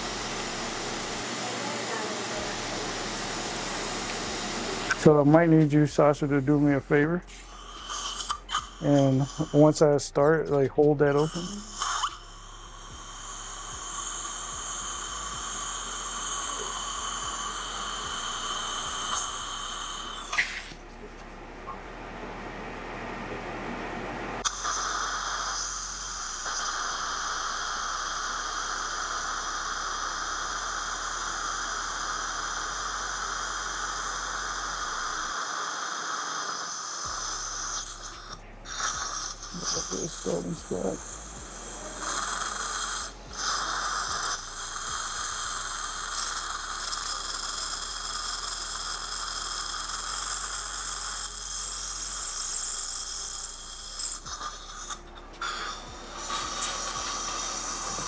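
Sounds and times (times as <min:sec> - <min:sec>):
suction tip hissing: 0:00.0 - 0:20.8, 0:24.4 - 0:58.0
dental drill whining: 0:00.0 - 0:20.9, 0:24.4 - 0:58.0.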